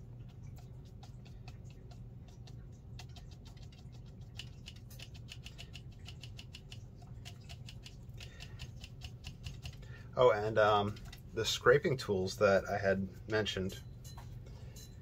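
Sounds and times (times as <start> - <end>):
brush tapping paint on paper: 0.0 - 11.3
low steady hum: 0.0 - 15.0.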